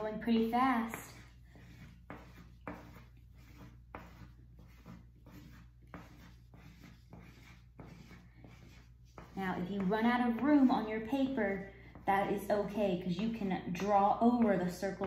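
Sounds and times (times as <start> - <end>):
crayon rubbing on paper: 0.3 - 12.4.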